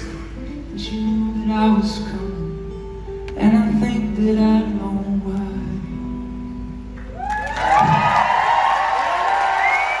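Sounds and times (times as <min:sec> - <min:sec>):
audience cheering and applause: 0:07.1 - 0:10.0.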